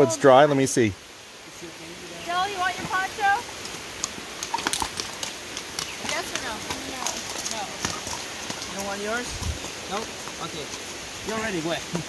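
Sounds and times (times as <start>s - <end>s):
horse hooves on wet gravel: 2.1s - 12.0s.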